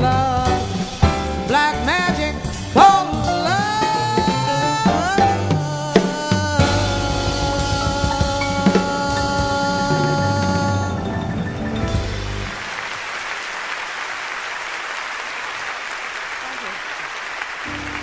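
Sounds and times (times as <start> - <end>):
jazz band with drums: 0.0 - 13.0, 17.6 - 18.0
audience applause: 11.4 - 18.0.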